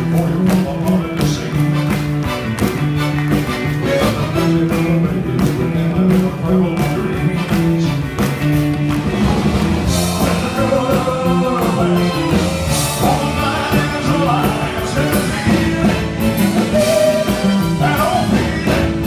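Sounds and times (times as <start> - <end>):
man singing lead vocal: 0.0 - 2.0, 3.7 - 19.0
bass guitar: 0.0 - 19.0
drums: 0.0 - 19.0
electric guitar: 0.0 - 19.0.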